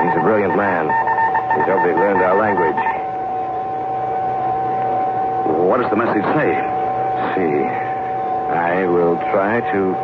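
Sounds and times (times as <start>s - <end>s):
steady radio tone: 0.0s - 10.0s.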